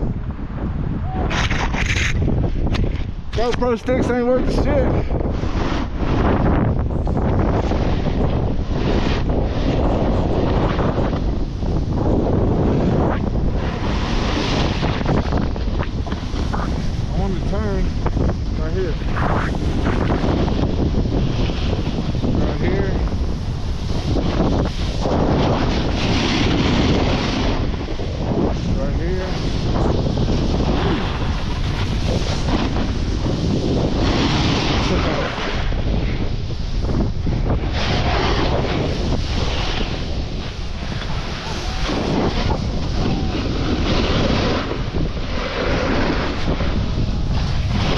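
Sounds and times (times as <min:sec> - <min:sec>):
wind on camera microphone: 0:00.0 - 0:47.9
snowboard scraping on snow: 0:01.3 - 0:02.5, 0:03.4 - 0:47.9.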